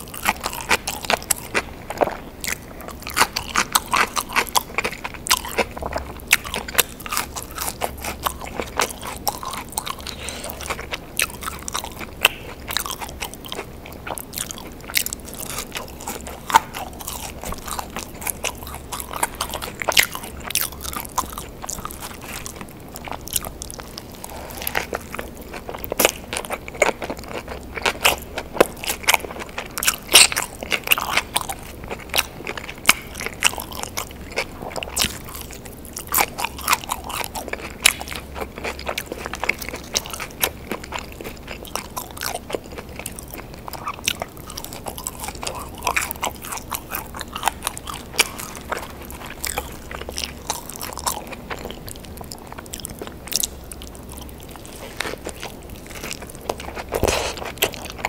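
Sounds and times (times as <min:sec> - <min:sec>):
person biting and chewing food: 0:00.0 - 0:58.0.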